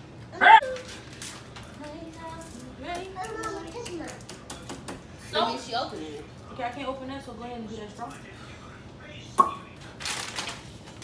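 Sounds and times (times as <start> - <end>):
foil pouches crinkling: 9.8 - 11.0.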